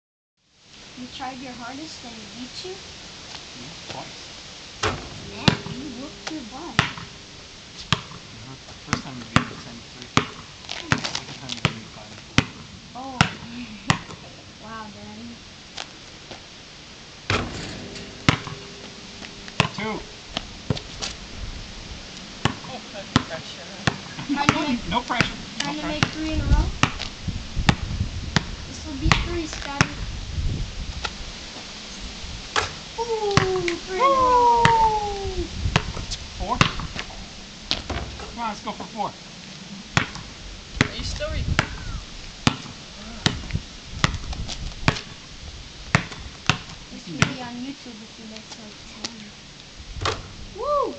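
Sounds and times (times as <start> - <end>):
rim ringing: 4.6 - 9.7, 16.0 - 23.6
basketball clanging on rim: 4.8 - 8.3, 17.3 - 21.4.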